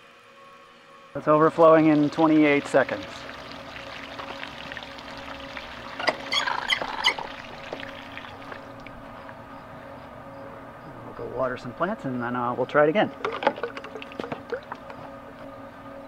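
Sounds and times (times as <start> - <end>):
water pouring into watering can: 1.6 - 9.0, 13.1 - 15.0
high rapid squeaks: 6.0 - 7.3.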